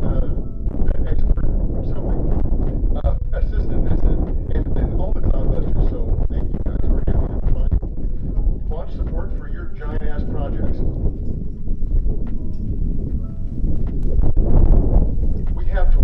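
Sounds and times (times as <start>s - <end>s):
indistinct voices talking: 0.0s - 11.2s, 15.5s - 16.0s
wind buffeting microphone: 0.0s - 16.0s.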